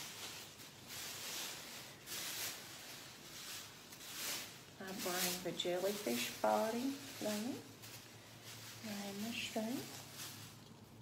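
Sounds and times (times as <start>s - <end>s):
plastic bag liners rustling: 0.0s - 11.0s.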